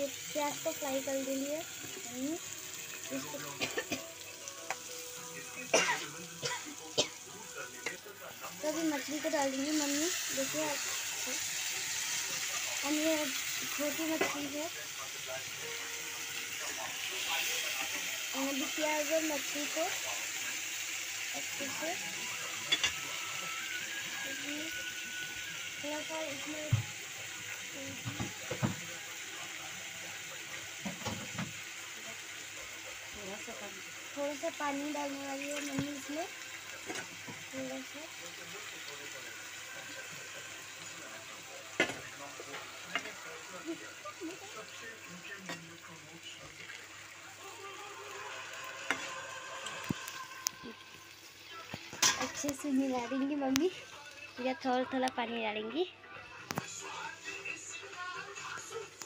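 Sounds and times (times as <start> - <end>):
fish sizzling in a pan: 0.0 - 59.0.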